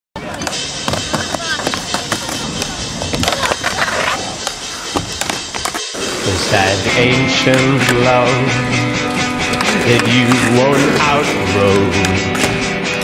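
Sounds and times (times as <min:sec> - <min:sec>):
voices: 0:00.2 - 0:05.4
skateboard wheels rolling on ramp: 0:00.3 - 0:08.0.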